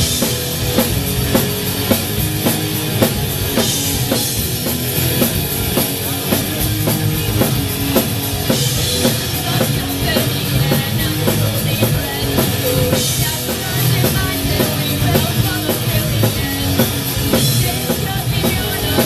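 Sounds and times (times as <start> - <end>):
distorted electric guitars: 0.0 - 19.0
driving drum beat: 0.0 - 19.0
electric bass: 0.0 - 19.0.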